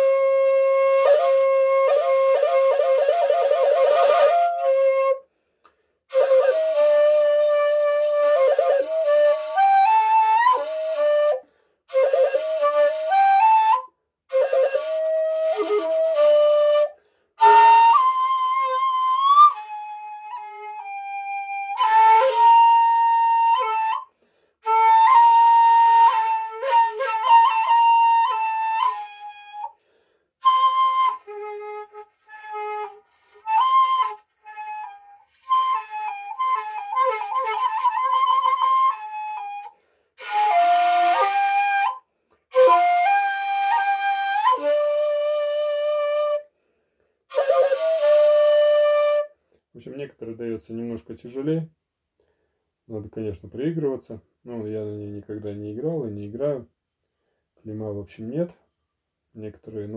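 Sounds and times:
bamboo flute playing: 0.0s - 5.4s, 6.1s - 29.8s, 30.4s - 46.6s, 47.3s - 49.4s.

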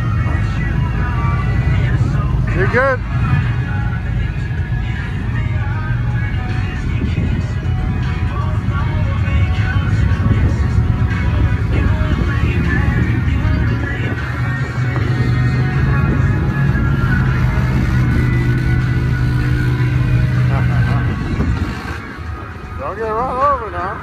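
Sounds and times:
pickup truck engine droning: 0.0s - 24.0s.

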